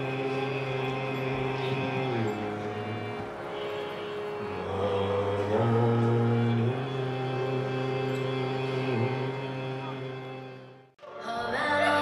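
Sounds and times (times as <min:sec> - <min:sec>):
harmonium sustained chords: 0:00.0 - 0:12.0.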